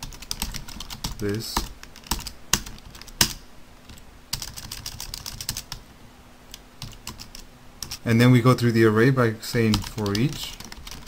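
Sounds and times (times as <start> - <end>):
computer keyboard typing: 0.0 - 5.8, 6.5 - 8.0, 9.7 - 11.0.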